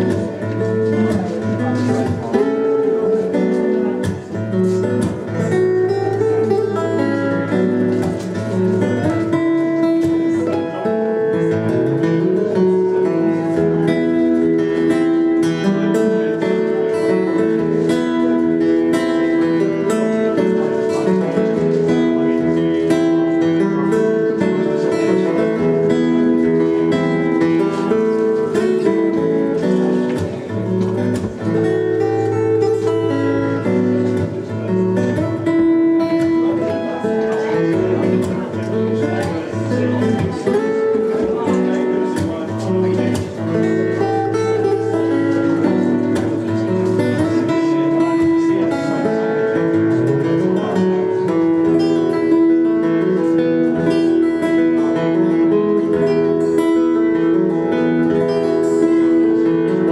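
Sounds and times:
acoustic guitar song: 0.0 - 59.9.

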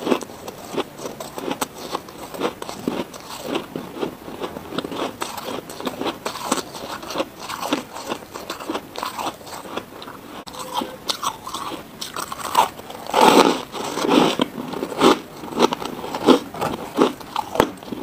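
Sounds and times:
chewing crunchy frost: 0.0 - 18.0.

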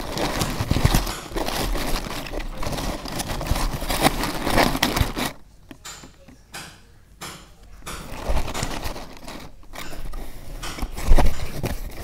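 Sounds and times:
paper crinkling rustle: 0.0 - 5.4, 7.8 - 12.0.

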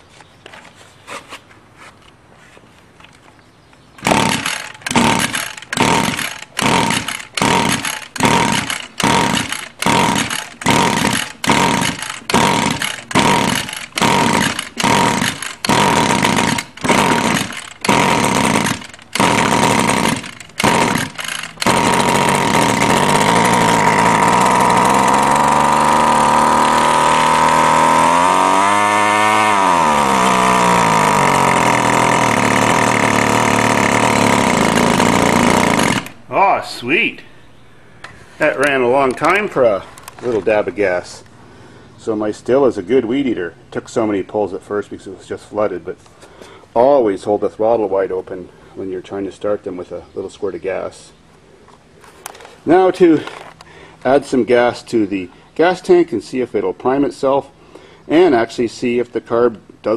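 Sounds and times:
starter cord rasping: 4.0 - 36.2
string trimmer engine running: 4.0 - 36.2, 38.4 - 40.6.

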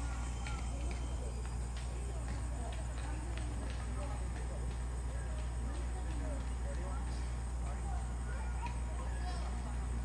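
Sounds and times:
faint indistinct talk: 0.0 - 10.0.

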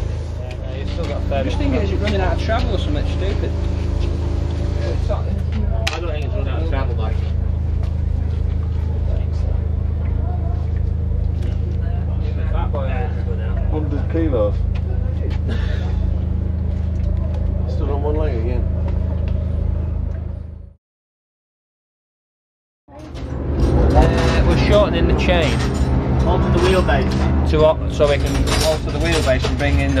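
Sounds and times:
low engine hum: 0.0 - 20.8, 22.9 - 30.0
indistinct voices: 22.9 - 30.0.

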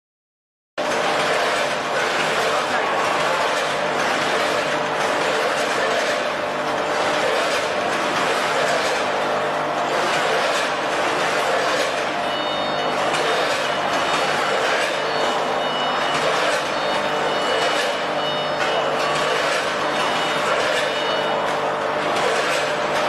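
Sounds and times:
packaging machine running: 0.8 - 23.0.

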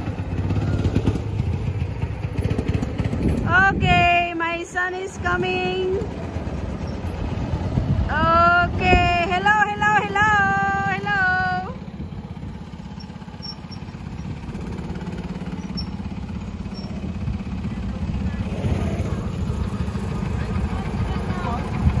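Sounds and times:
go-kart engines puttering: 0.0 - 22.0.

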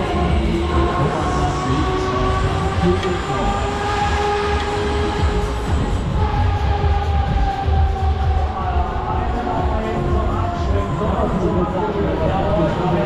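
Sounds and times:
steady wavering tones: 0.0 - 13.0.

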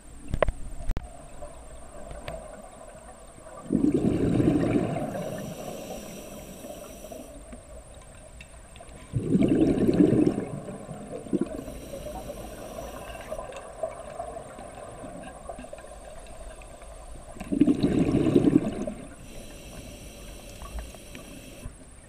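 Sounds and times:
steady underwater hiss: 0.0 - 22.0
exhaled bubbles underwater: 1.0 - 21.7.

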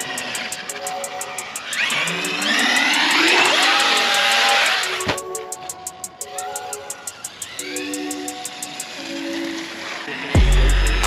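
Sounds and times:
toy car motor whine: 0.0 - 6.0, 6.9 - 11.0
background music with steady beat: 0.0 - 11.0.

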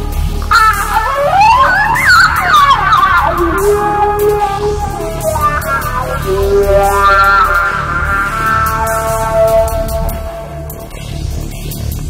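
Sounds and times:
wailing electronic lead line: 0.0 - 11.5
steady low bass: 0.0 - 12.0.

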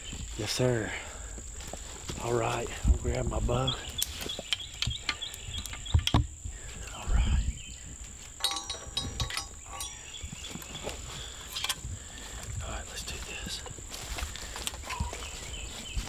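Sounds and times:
high insect drone: 0.1 - 15.7
bow clicking and knocking on metal: 8.4 - 10.7.

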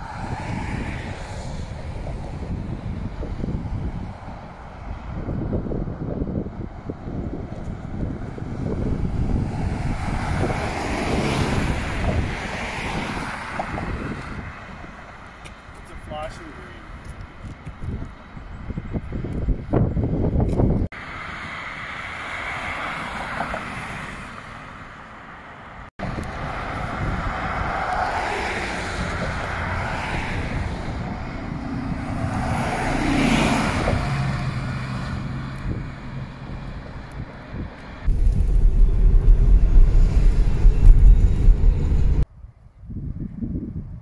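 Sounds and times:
wind rumble on microphone: 0.0 - 16.0, 16.6 - 20.9, 26.0 - 44.0
bus driving past: 21.0 - 42.2
steady engine hum: 28.8 - 42.3.

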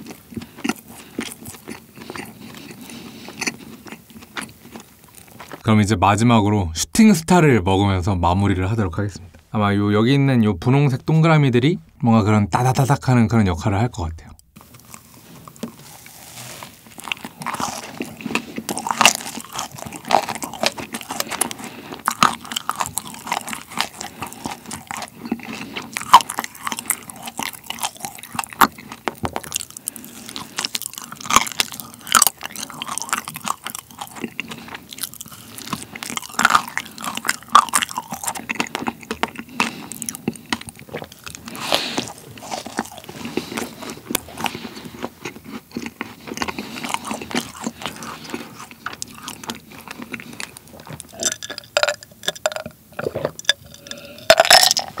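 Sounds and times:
wet mouth sounds: 0.0 - 5.6, 14.3 - 55.0
biting and chewing macaron: 0.0 - 5.8, 14.4 - 55.0.

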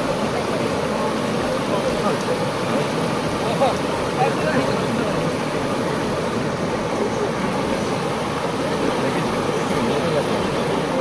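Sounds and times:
faint voices: 0.0 - 11.0
stream rushing over rocks: 0.0 - 11.0.

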